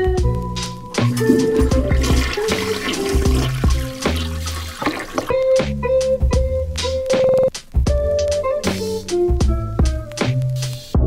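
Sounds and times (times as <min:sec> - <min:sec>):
background music with drum beat: 0:00.0 - 0:11.0
toilet flushing: 0:01.0 - 0:05.4.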